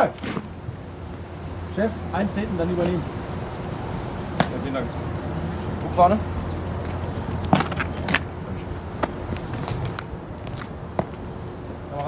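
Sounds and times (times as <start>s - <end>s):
boot steps on stone: 6.8s - 11.3s.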